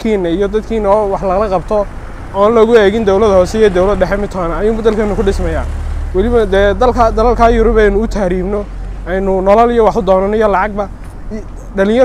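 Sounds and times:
low rumble of road traffic: 0.0s - 12.0s
man speaking: 0.0s - 12.0s.

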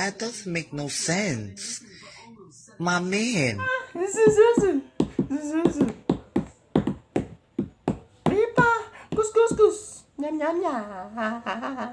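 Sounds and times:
sharp hand taps: 4.2s - 9.8s.

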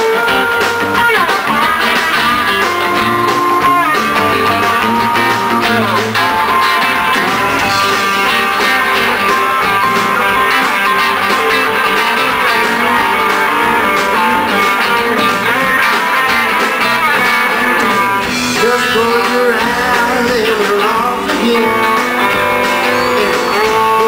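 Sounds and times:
electric guitar bending notes: 0.0s - 24.0s
rock band playing: 0.0s - 24.0s.

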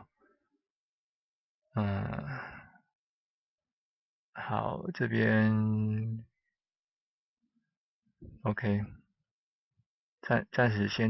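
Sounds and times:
man sighing: 1.8s - 2.5s.

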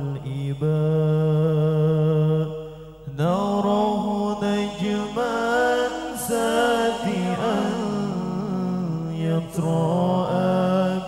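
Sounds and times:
man singing through a microphone: 0.0s - 11.0s.

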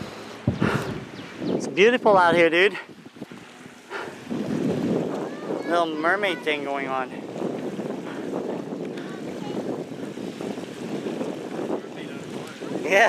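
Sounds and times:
gentle surf on rocky shore: 0.0s - 13.0s
wind rushing on microphone: 0.0s - 13.0s.

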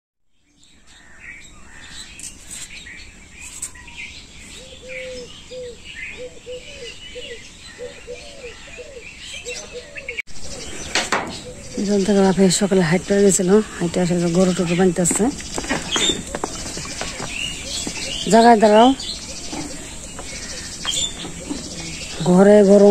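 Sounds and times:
birds chirping: 0.3s - 22.9s.

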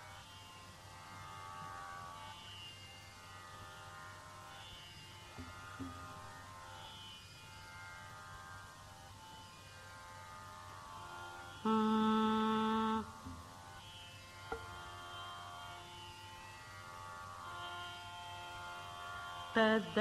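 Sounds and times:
tambura drone: 0.0s - 20.0s
soft knocks: 5.4s - 6.0s, 13.2s - 13.5s, 14.5s - 14.7s.

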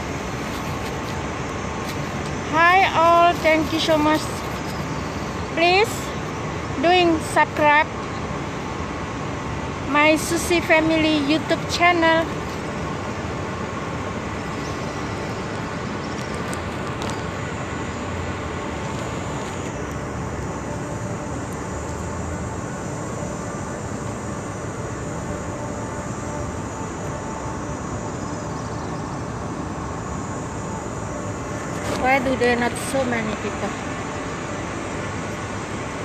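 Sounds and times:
traffic roar: 0.0s - 36.0s.

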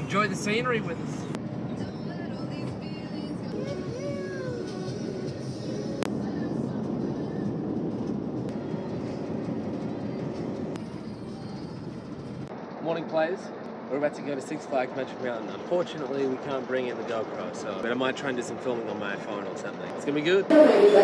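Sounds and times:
road and engine noise: 0.0s - 21.0s
music playing: 2.0s - 12.5s.

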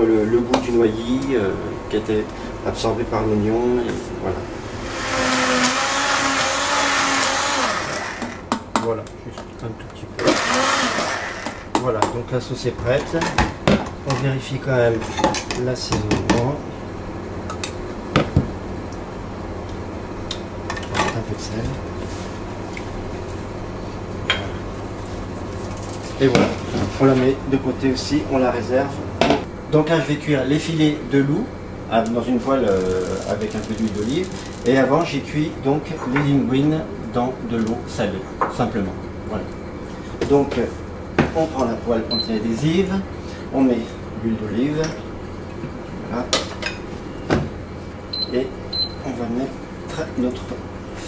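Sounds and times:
low hum of kitchen equipment: 0.0s - 51.0s.

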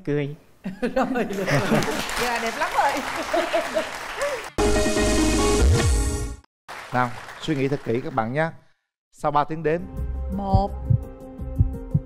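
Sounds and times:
studio audience applauding: 1.4s - 4.8s, 6.7s - 8.5s.

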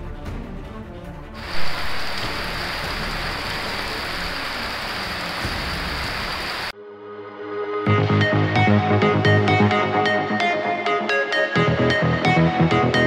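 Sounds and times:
heavy rain pouring: 1.4s - 6.7s.

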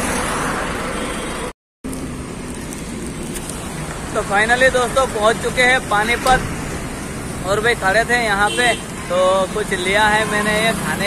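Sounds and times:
road traffic noise: 0.0s - 11.0s.

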